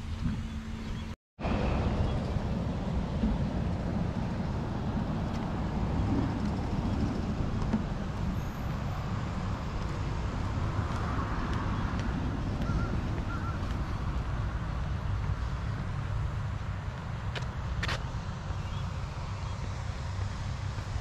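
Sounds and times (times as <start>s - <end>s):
road traffic: 0.0s - 21.0s
wind on microphone: 1.5s - 16.7s.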